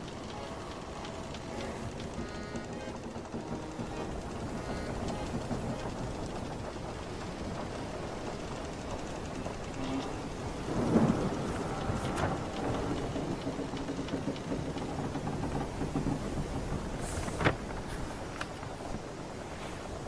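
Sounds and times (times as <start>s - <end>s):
rushing water: 0.0s - 20.0s
wooden timbers creaking: 0.0s - 20.0s.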